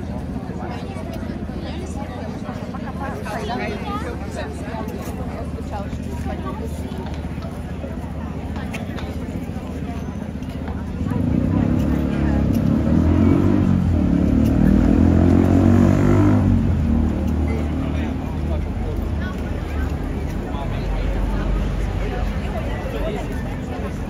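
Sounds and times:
vehicle engine running: 0.0 - 24.0.

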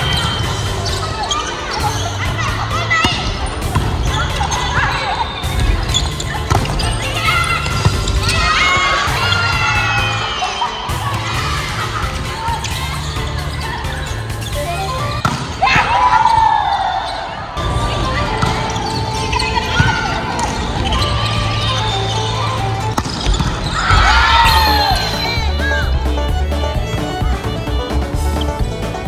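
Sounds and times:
players shouting: 0.0 - 29.0
volleyball slaps: 3.0 - 4.9, 5.5 - 9.4, 15.2 - 16.7, 22.9 - 25.2
background music with bass line: 5.5 - 15.3, 17.6 - 29.0.

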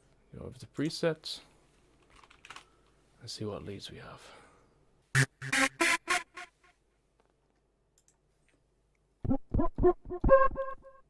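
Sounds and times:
synthesizer lead notes: 5.2 - 6.7, 9.2 - 11.0.

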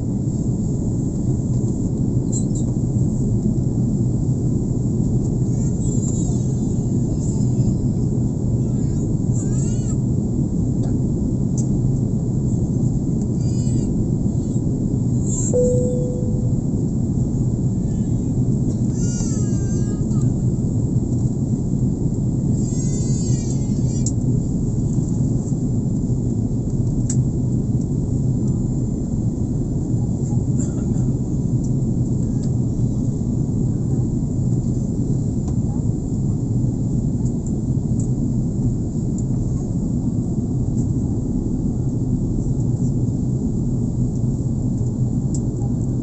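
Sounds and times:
airliner cabin drone: 0.0 - 46.0
short ringing tone: 15.6 - 16.8.

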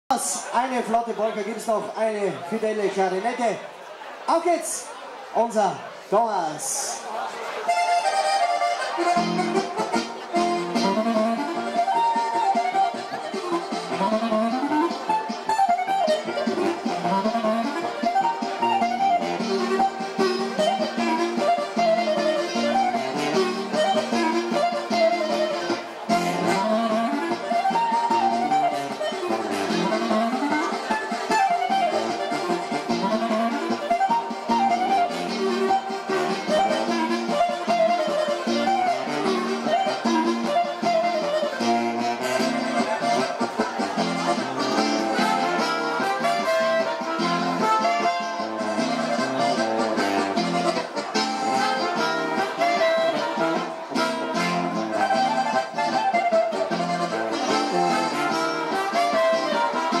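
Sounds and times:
band playing fast polka: 0.1 - 60.0
accordion accompaniment: 6.6 - 60.0
clarinet lead: 7.6 - 60.0.

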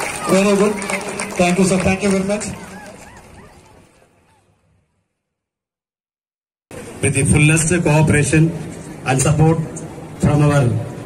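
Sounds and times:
outdoor background noise: 0.0 - 5.6, 6.7 - 11.0
animal yelping calls: 2.6 - 4.5.

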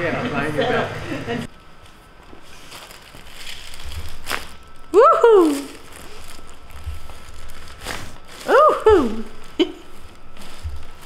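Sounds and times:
woman's wordless exclamation: 5.0 - 5.8, 8.5 - 9.3
clothing rustling: 5.6 - 11.0.

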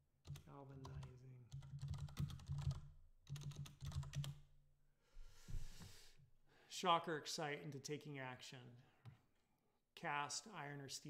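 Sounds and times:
fast typing on keyboard: 0.3 - 4.4.

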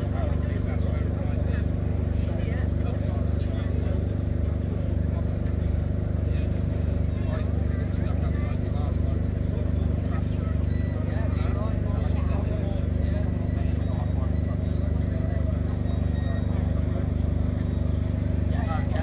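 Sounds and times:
indistinct voices: 0.0 - 19.0
low rumble of traffic and trains: 0.0 - 19.0.

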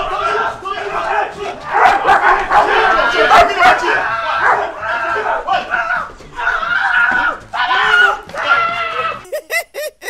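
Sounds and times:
drawn-out cry: 0.0 - 9.3
people shouting and yelling: 0.0 - 9.3.

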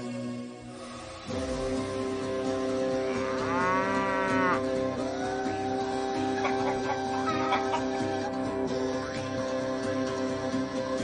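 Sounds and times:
background music: 0.0 - 11.0
cow mooing: 2.9 - 4.8.

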